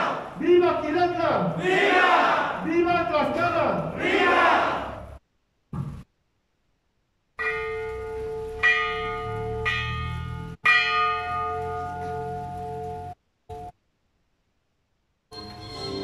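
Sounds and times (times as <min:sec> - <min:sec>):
hanging bell ringing: 0:07.4 - 0:13.7.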